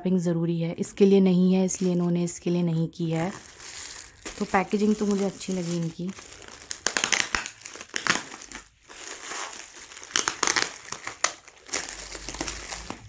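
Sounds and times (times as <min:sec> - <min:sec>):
bubble wrap crinkling: 0:01.7 - 0:02.1, 0:03.0 - 0:13.0
plastic bag rustling: 0:03.0 - 0:13.0.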